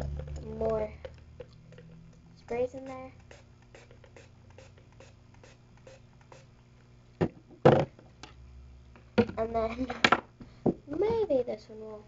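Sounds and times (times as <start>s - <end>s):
spray bottle top clicking: 2.8s - 6.5s.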